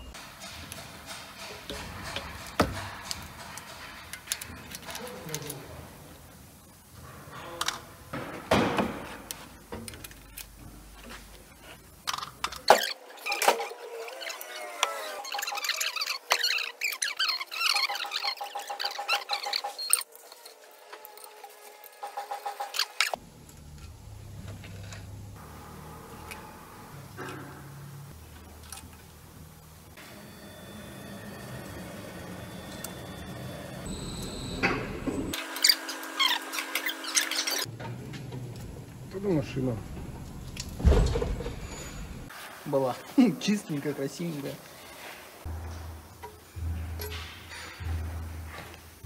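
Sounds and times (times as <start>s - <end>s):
valve spring compressor squeaking: 15.1s - 20.1s, 32.7s - 37.7s
low hum: 23.2s - 35.4s, 37.7s - 42.3s, 45.5s - 49.0s.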